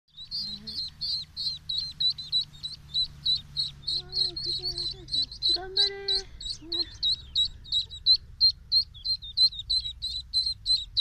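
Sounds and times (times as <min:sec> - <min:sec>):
ducklings peeping: 0:00.1 - 0:11.0.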